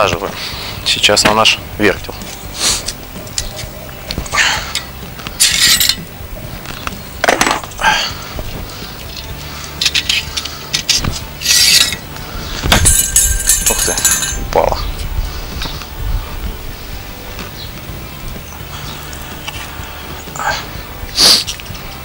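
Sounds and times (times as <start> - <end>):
metal clicks and clinks: 4.7 - 6.0, 12.8 - 14.5
metal scraping: 8.8 - 16.0.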